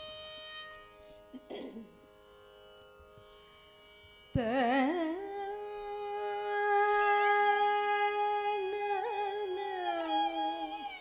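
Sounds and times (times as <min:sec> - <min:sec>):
electronic tanpura drone: 0:00.0 - 0:11.0.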